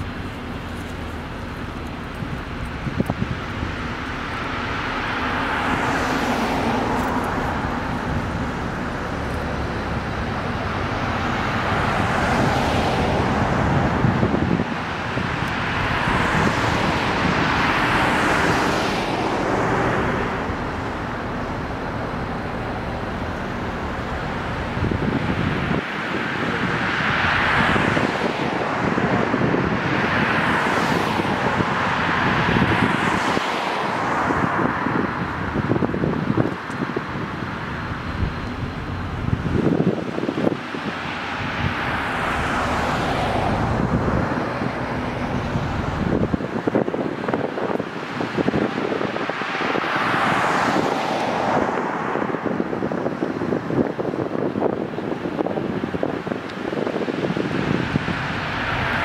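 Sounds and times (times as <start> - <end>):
cars passing on paved street: 0.0 - 59.0.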